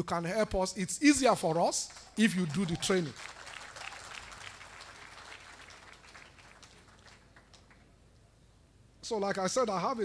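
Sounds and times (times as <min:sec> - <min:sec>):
audience applause: 0:01.9 - 0:07.9.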